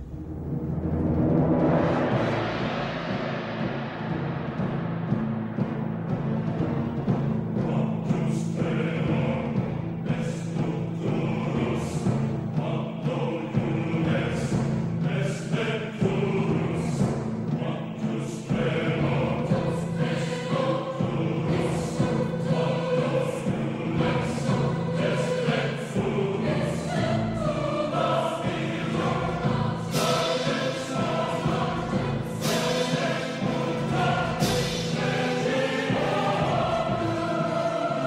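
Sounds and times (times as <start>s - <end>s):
loud percussive strikes: 0.0s - 10.0s, 28.5s - 37.5s
choir singing sustained chords: 0.0s - 38.0s
orchestral music: 0.0s - 38.0s.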